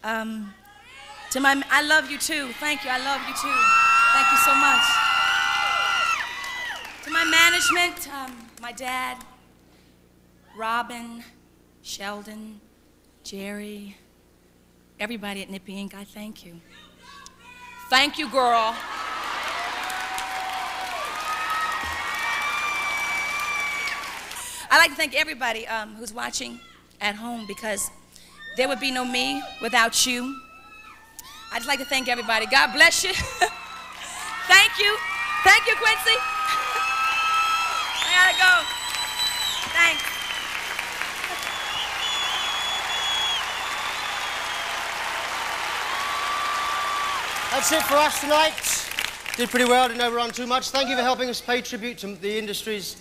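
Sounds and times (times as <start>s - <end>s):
crowd applauding and cheering: 1.0s - 8.6s, 18.3s - 24.6s, 31.5s - 51.3s
high whistles: 37.0s - 44.8s.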